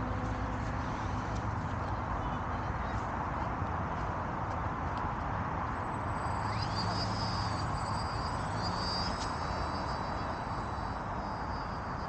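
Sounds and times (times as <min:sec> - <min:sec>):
model plane motor whine: 0:05.8 - 0:12.0.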